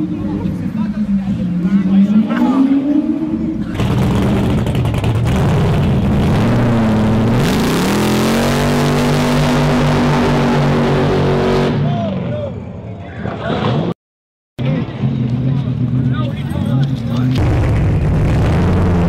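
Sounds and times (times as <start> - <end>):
car engine revving hard: 1.6 - 11.8, 17.4 - 19.0.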